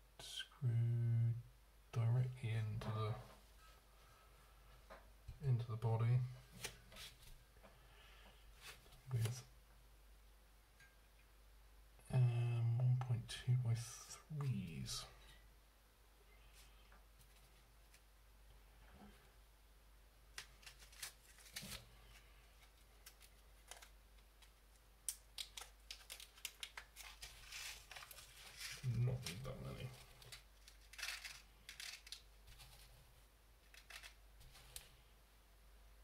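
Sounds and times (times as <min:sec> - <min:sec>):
small metal pieces clicking: 0:30.6 - 0:32.2.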